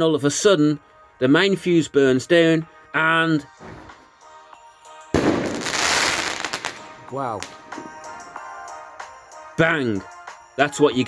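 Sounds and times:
firework bang: 5.2 - 6.9
firework crackle: 5.2 - 7.6.

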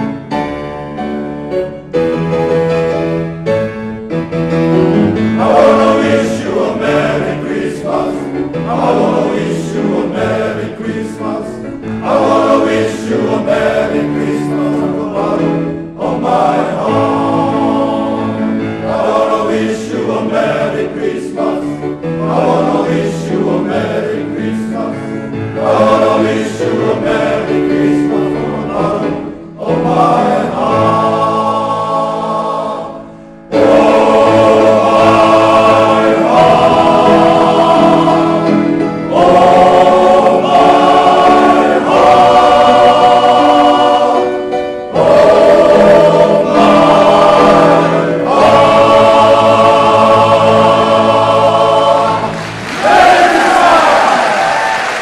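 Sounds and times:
male choir singing: 4.4 - 55.0.

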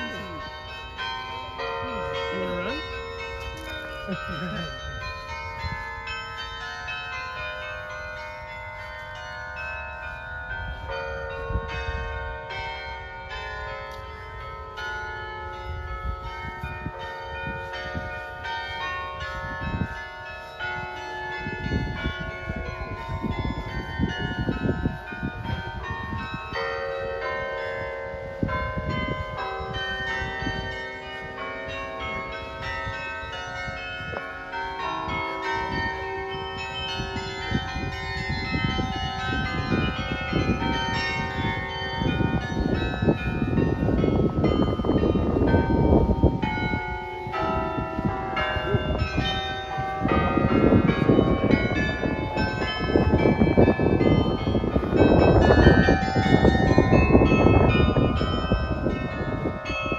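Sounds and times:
carillon bells playing melody: 0.0 - 59.9.

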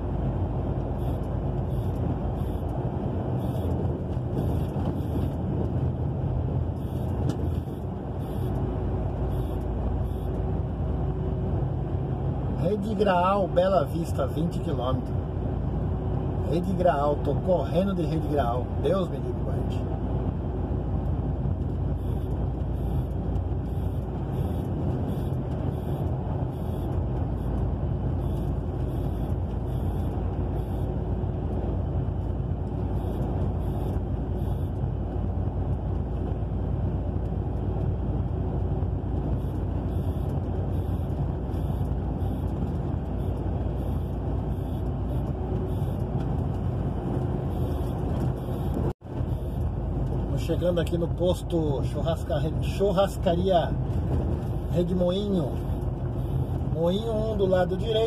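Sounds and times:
diesel truck engine running: 0.0 - 58.0
tyre and road noise: 0.0 - 58.0.

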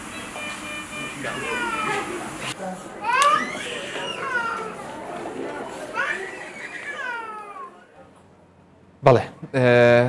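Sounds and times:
children calling out: 1.1 - 8.0.

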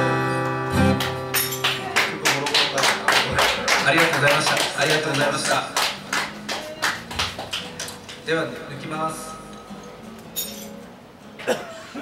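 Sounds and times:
hand claps from small audience: 0.9 - 8.3.

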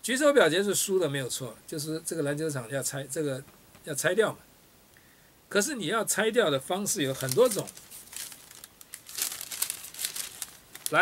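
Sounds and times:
paper crinkling and rustling: 6.9 - 11.0.

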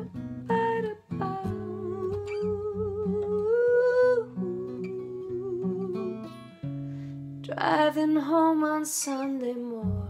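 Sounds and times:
woman singing wordless notes: 0.0 - 6.4, 7.4 - 10.0
acoustic guitar chords: 0.0 - 10.0.

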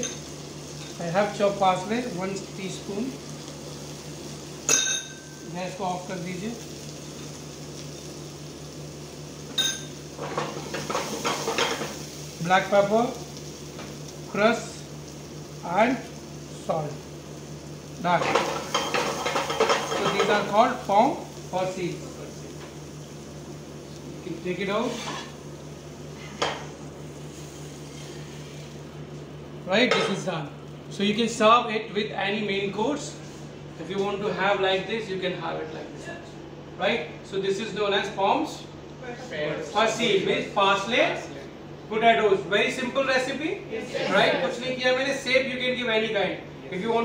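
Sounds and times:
steady low hum: 0.0 - 47.0
cookware clank: 4.7 - 5.3.

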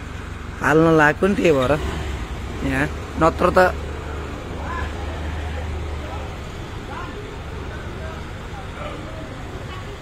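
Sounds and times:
crowd chatter: 3.2 - 10.0.

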